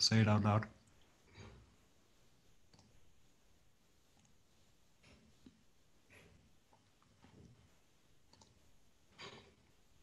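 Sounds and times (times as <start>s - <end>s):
faint clicks: 2.7s - 3.0s, 8.3s - 8.6s.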